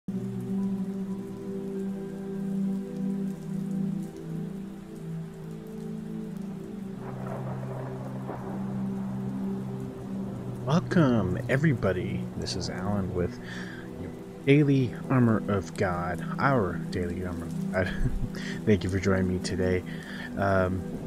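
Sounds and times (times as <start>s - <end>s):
steady rain: 0.1s - 21.0s
drone of held chords: 0.2s - 21.0s.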